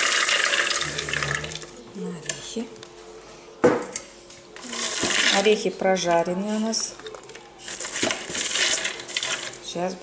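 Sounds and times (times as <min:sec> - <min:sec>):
rustling in plastic bowl: 0:06.6 - 0:09.6.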